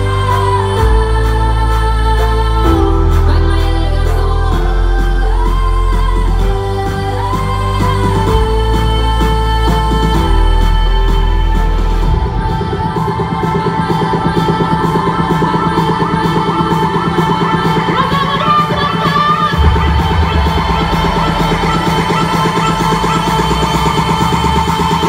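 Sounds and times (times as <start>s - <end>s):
house club music: 0.0s - 25.0s.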